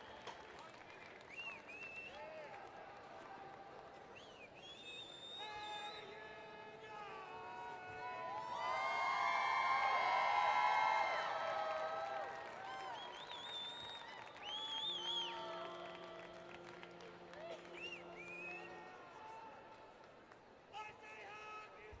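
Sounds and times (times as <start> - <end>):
stadium crowd cheering: 0.0 - 22.0.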